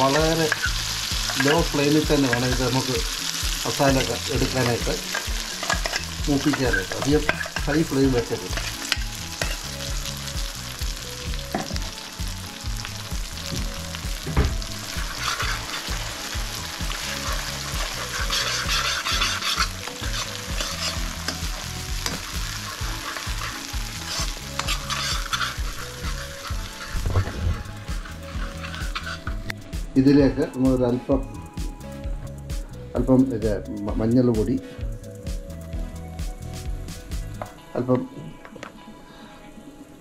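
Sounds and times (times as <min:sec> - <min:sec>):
ladle stirring and scraping: 0:00.0 - 0:09.9, 0:14.8 - 0:29.6
paste sizzling in hot oil: 0:00.0 - 0:30.7.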